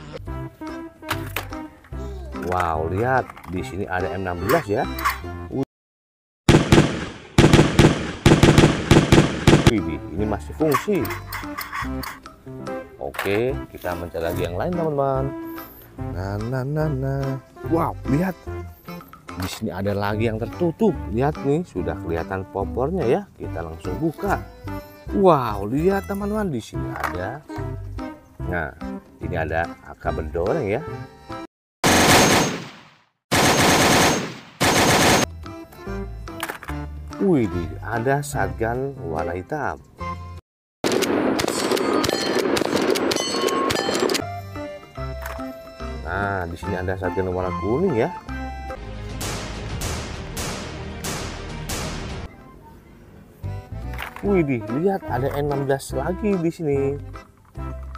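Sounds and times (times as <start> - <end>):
automatic rifle gunfire: 6.5 - 9.8, 31.8 - 35.3, 40.8 - 44.0, 49.2 - 52.3.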